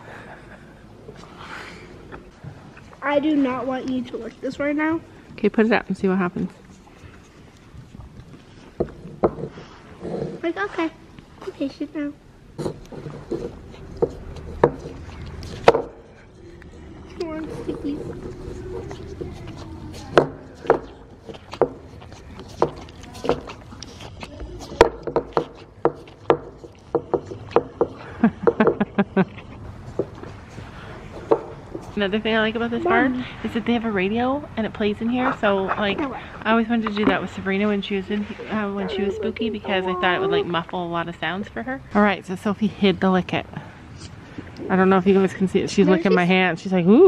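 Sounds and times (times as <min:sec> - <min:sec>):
horse licking and gnawing: 0:06.4 - 0:11.6, 0:12.6 - 0:41.1.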